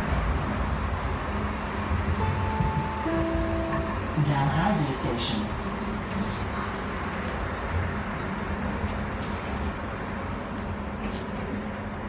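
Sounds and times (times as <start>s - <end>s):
train cabin rumble: 0.0s - 12.0s.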